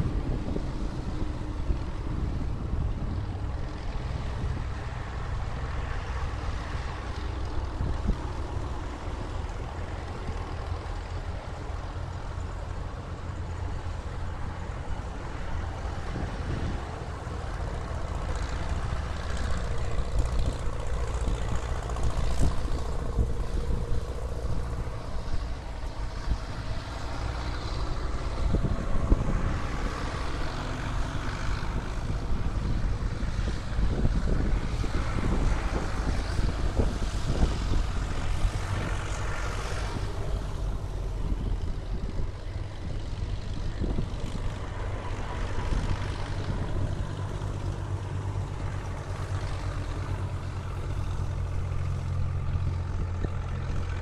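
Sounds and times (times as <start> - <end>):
tractor engines droning: 0.0 - 54.0.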